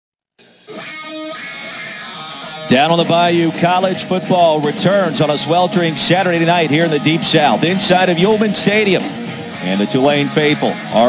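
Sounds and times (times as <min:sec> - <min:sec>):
intro music with sustained notes: 0:00.8 - 0:11.0.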